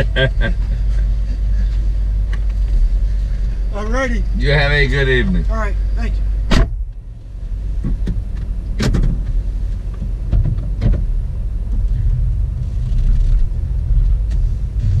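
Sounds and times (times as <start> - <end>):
car engine running: 0.0 - 15.0
car door shutting: 6.4 - 6.8, 7.8 - 9.4, 10.0 - 11.2
sharp clicks and knocks: 7.8 - 11.1.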